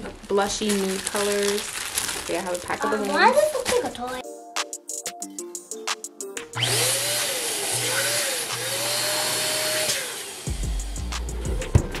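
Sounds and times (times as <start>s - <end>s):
electric balloon pump humming: 6.6s - 12.0s.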